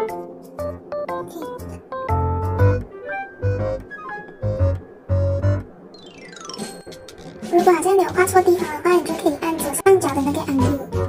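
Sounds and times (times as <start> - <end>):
keyboard melody: 0.0 - 8.7.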